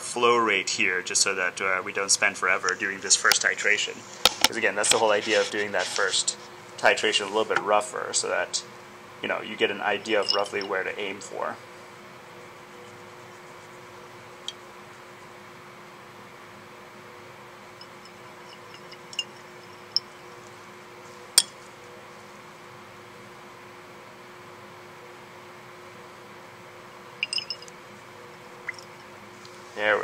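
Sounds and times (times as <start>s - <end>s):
faint hum: 0.0s - 30.0s
glass clinks and taps: 10.2s - 10.7s, 17.8s - 20.1s, 27.2s - 27.7s.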